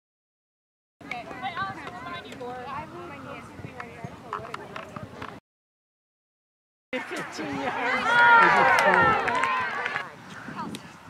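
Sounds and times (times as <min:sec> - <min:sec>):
voices calling out: 0:07.0 - 0:11.0.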